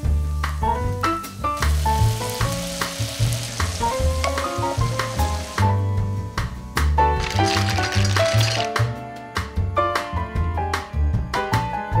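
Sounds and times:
background music with bass line: 0.0s - 12.0s
chickpeas sizzling in oil: 0.1s - 8.8s.

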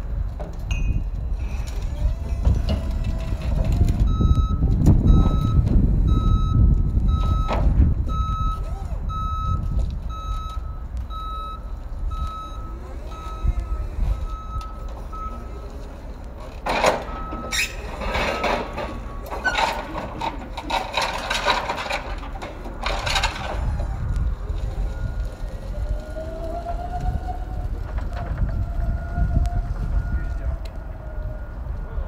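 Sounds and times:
forklift engine running: 0.0s - 32.0s
reversing alarm beeping: 0.7s - 32.0s.

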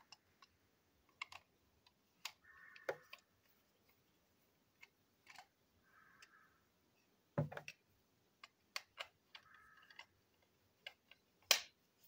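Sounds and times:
small plastic clicks and taps: 0.0s - 4.0s, 4.7s - 6.4s, 7.4s - 11.8s.

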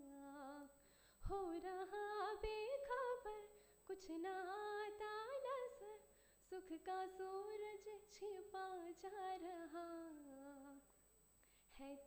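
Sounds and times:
woman singing unaccompanied: 0.0s - 10.9s, 11.7s - 12.0s.

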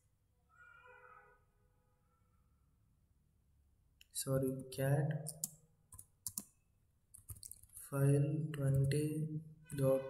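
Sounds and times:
computer keyboard typing: 5.2s - 6.5s, 7.1s - 7.8s.

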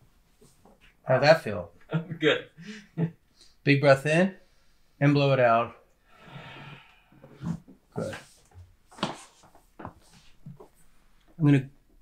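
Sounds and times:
person blowing out breath: 6.1s - 7.6s.

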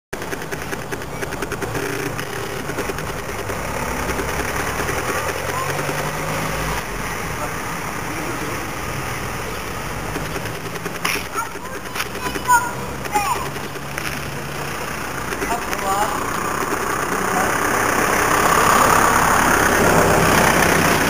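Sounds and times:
engine running hum: 0.2s - 21.0s
people talking: 5.1s - 6.1s, 7.3s - 8.8s, 11.1s - 16.4s, 17.1s - 17.7s.

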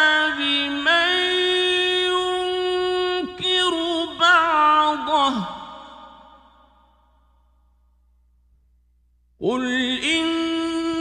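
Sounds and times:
man reciting a held note: 0.0s - 6.1s, 9.4s - 11.0s.

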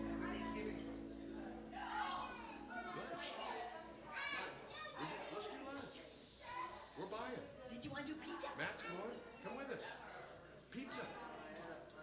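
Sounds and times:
indistinct chatter: 0.0s - 12.0s
child's high voice: 1.8s - 5.0s.

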